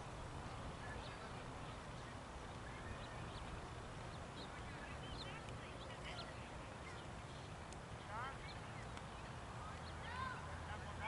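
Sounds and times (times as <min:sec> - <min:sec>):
birds chirping faintly: 0:00.0 - 0:11.0
low outdoor rumble: 0:00.0 - 0:11.0.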